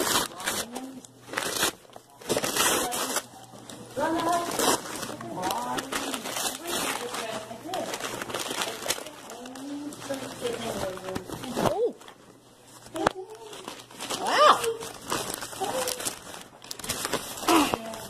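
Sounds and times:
paper bag and tissue rustling: 0.0 - 18.0.

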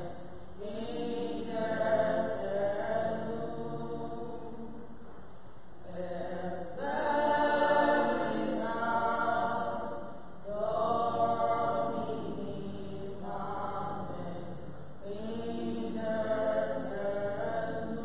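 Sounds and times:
voices singing a church hymn: 0.0 - 18.0.

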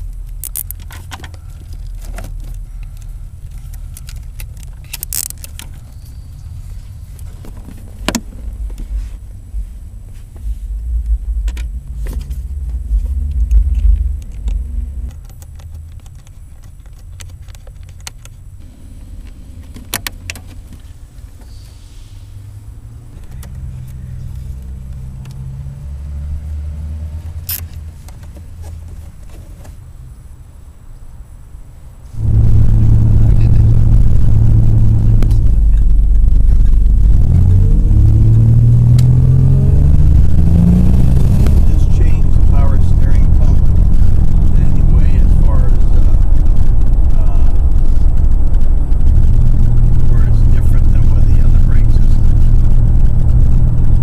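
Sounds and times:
car engine accelerating: 0.0 - 29.2, 32.0 - 54.0.

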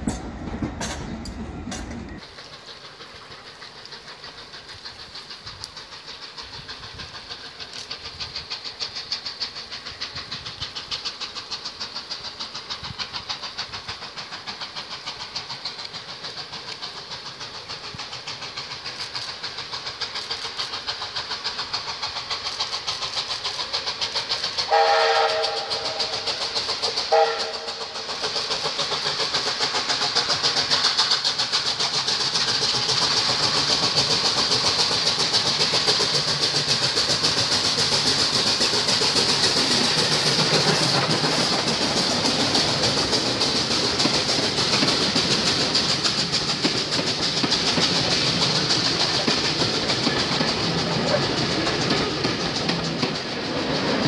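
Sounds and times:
train rumble: 0.0 - 54.0
wheels clacking over rail joints: 0.0 - 54.0
steam locomotive whistle: 24.6 - 26.4, 27.0 - 28.0.

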